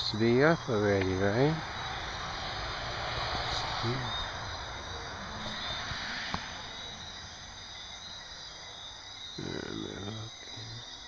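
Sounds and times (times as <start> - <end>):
low background rumble: 0.0 - 10.9
insects singing: 0.0 - 11.0.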